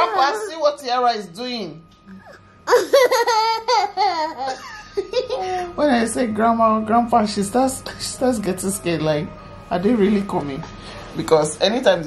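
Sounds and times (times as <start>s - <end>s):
toddler giggling: 2.2s - 5.7s.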